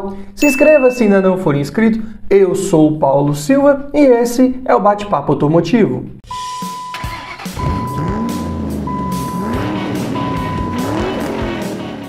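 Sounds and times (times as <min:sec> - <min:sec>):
high electronic tone: 0:00.4 - 0:01.5
engine revving: 0:07.0 - 0:12.0
intro music: 0:07.7 - 0:12.0.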